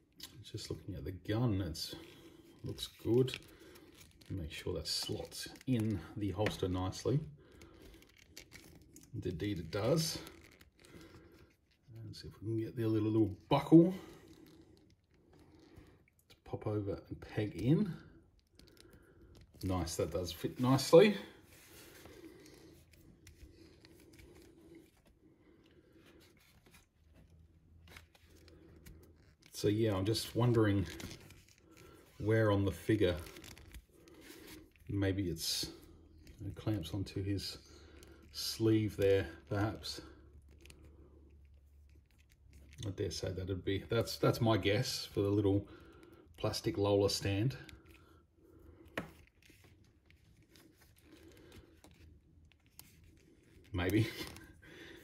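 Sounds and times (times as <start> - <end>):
faint handling rustling: 0.0 - 55.0
plastic toy clicks and rubs: 7.5 - 12.0, 40.3 - 43.4, 48.6 - 54.6.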